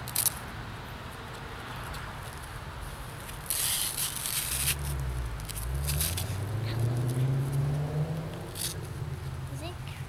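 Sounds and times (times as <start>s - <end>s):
hook-and-loop strap rasping: 3.2s - 7.6s, 8.3s - 9.0s.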